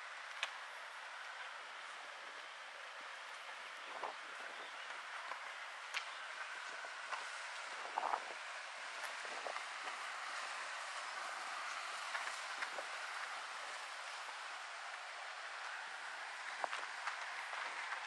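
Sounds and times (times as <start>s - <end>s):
rustling leaves: 0.0s - 18.0s
wind: 0.0s - 18.0s.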